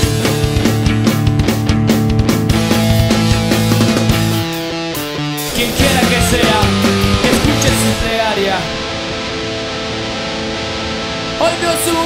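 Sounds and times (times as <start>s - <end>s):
punk band guitars: 0.0s - 12.0s.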